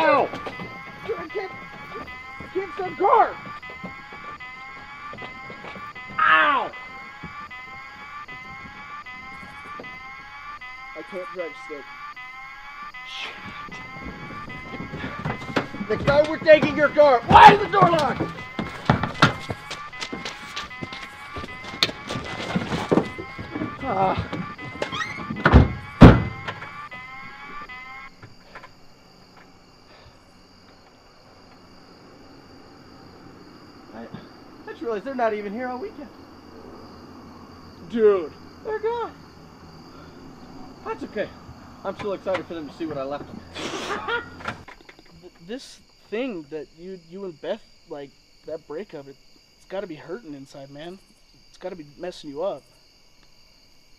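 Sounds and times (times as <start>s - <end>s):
electronic alarm tone: 0.0s - 44.7s
car doors slamming: 21.4s - 26.8s.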